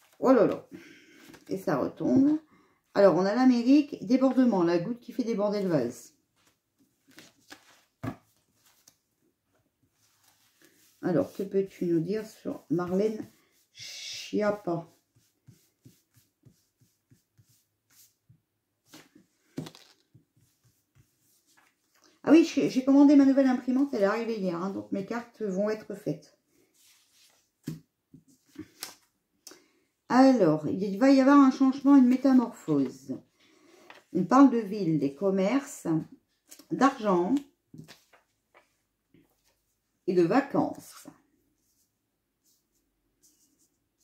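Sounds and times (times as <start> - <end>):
cards being shuffled: 6.4 - 9.0, 18.9 - 20.6, 28.4 - 29.1, 37.8 - 38.7
cards clicking on table: 19.6 - 20.1.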